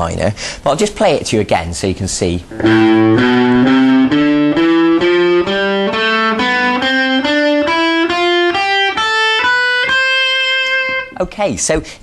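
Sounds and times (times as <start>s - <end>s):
electric guitar playing a scale: 2.5s - 11.2s.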